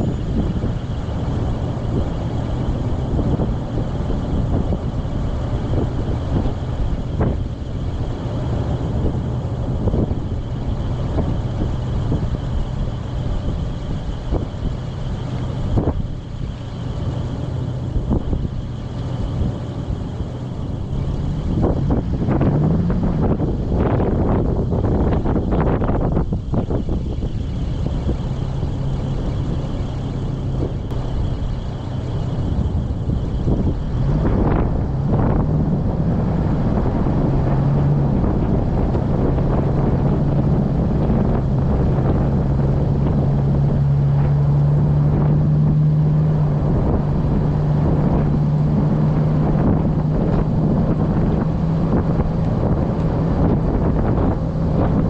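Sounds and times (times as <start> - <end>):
car engine idling: 0.0 - 55.0
wind noise on microphone: 0.0 - 55.0.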